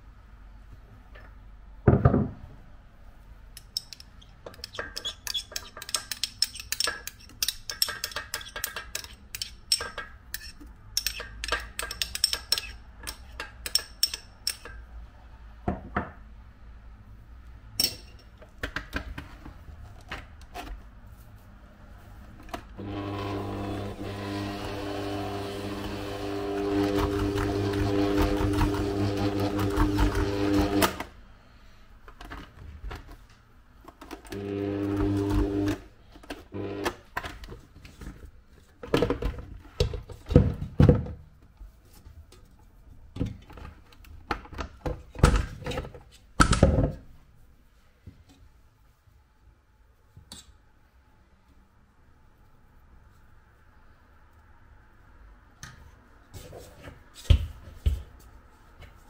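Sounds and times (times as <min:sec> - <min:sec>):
stand mixer motor humming: 0:22.8 - 0:30.8.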